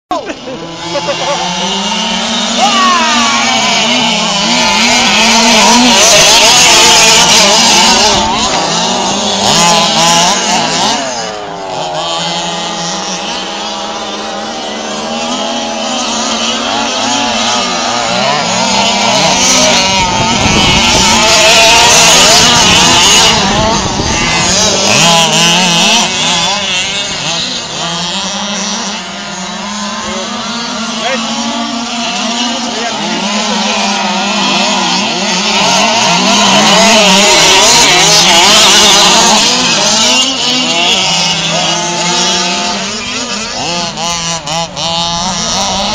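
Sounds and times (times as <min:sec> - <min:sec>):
small engines revving: 0:00.1 - 0:45.9.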